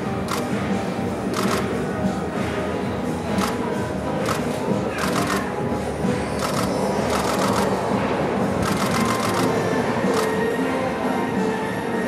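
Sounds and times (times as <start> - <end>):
murmur of voices: 0.0 - 12.0
camera shutter clicks: 1.3 - 1.7, 5.0 - 5.4, 6.4 - 7.7, 8.6 - 9.5.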